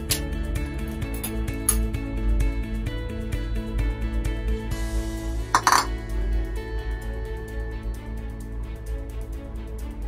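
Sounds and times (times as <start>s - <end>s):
bowl clinking against steel dish: 5.6s - 5.9s.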